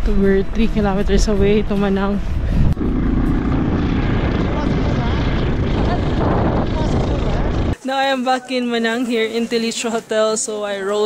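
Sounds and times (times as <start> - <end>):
wind buffeting microphone: 0.0 - 7.8.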